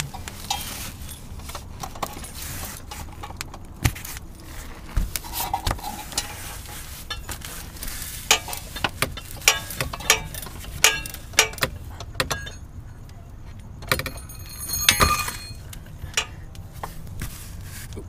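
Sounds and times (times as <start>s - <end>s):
metallic clatter ringing: 8.2s - 12.9s, 13.8s - 16.4s.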